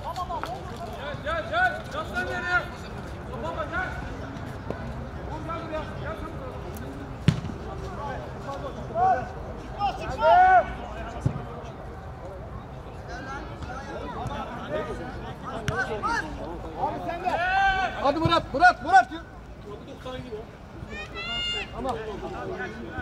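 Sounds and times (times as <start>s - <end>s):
ball kicked thud: 7.2s - 7.6s, 11.2s - 11.5s
players shouting: 9.0s - 11.4s, 13.7s - 19.3s, 20.8s - 23.0s.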